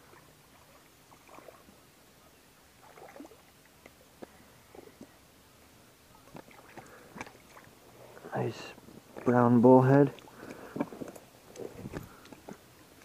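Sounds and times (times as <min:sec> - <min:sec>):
small water splashes: 0:00.0 - 0:01.9, 0:02.7 - 0:05.2, 0:06.2 - 0:07.8.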